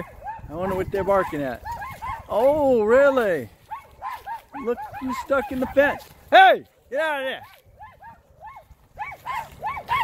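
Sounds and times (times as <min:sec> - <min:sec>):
small dogs yapping: 0:00.0 - 0:02.7, 0:03.5 - 0:06.1, 0:07.4 - 0:10.0.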